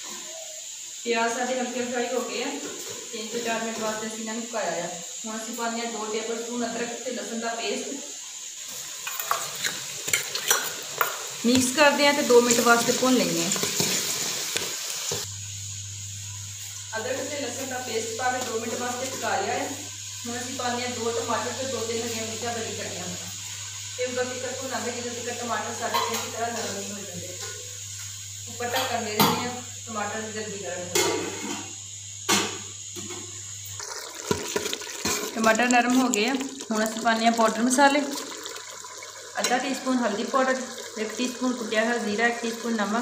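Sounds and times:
gas burner hissing: 0.0 - 43.0
onions sizzling in a pot: 0.0 - 43.0
low hum with faint hiss: 15.2 - 33.9
ladle stirring in a pot: 33.8 - 39.7.

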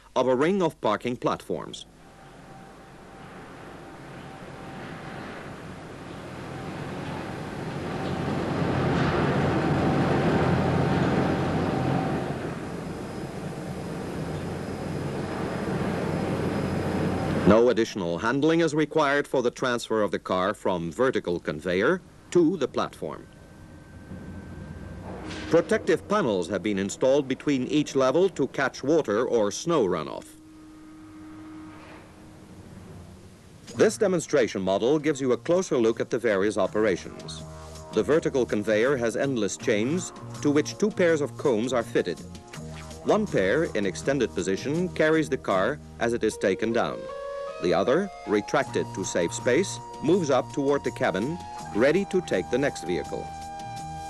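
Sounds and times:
faint steady hum: 0.0 - 54.0
light hiss: 25.0 - 35.8, 37.2 - 38.0.

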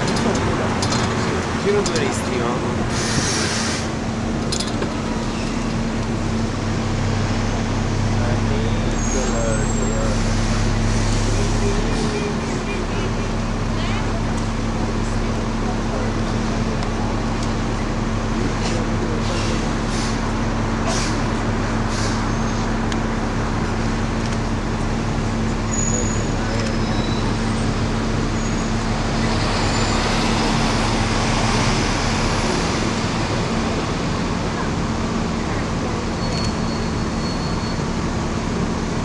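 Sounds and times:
bus engine humming: 0.0 - 39.0
road and traffic noise: 0.0 - 39.0.

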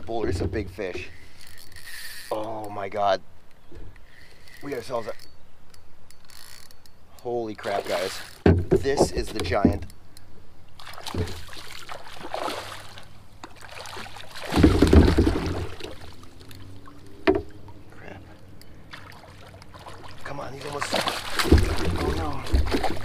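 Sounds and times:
water splashing and sloshing: 7.5 - 10.0, 10.6 - 23.0
fish thrashing at surface: 10.8 - 16.2, 19.0 - 23.0.

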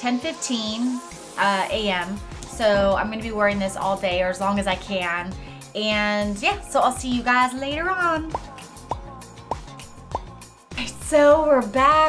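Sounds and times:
soft bass line: 1.7 - 12.0.

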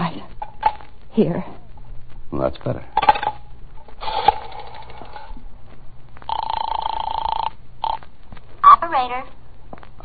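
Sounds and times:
buzzing telephone ring tone: 6.3 - 8.1.

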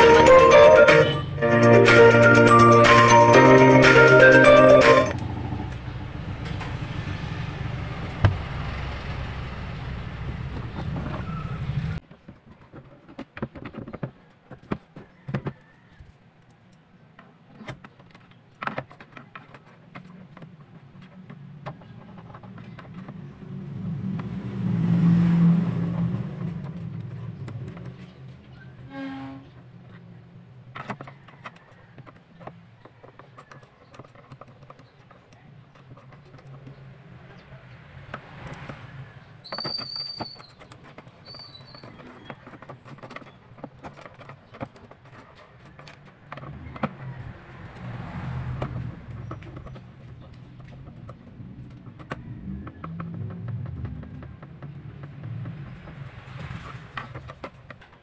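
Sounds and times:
vehicle passing: 0.0 - 12.0, 22.3 - 28.8, 36.0 - 41.3, 45.3 - 57.9
screwdriver clicking and scraping plastic: 17.5 - 23.2, 30.7 - 36.8, 39.5 - 47.2.

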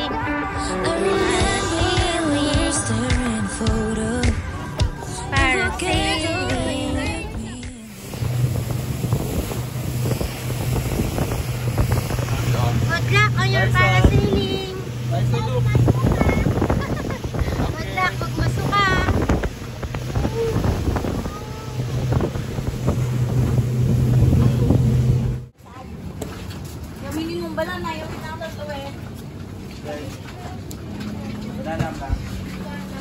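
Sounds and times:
motorboat engine droning: 0.0 - 33.0
water wash: 0.0 - 33.0
wind on microphone: 5.4 - 25.4.

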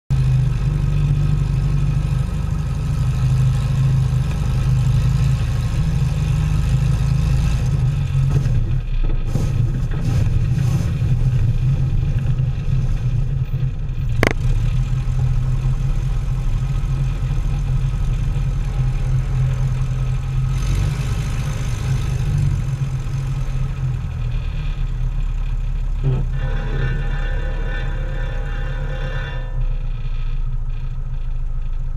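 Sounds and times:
plane propeller engine running: 0.1 - 31.9.

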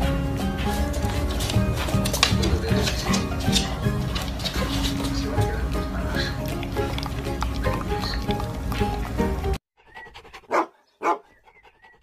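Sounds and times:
background music: 0.0 - 9.6
dog barks: 10.2 - 11.4.

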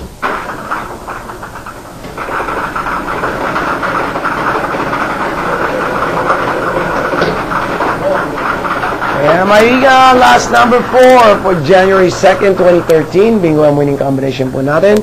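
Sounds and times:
plastic balls rattling in drum: 0.0 - 15.0.

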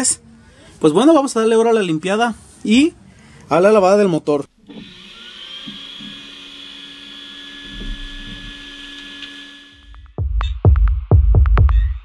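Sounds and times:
vacuum cleaner motor whining: 4.6 - 9.9
music with heavy beat: 9.8 - 12.0.

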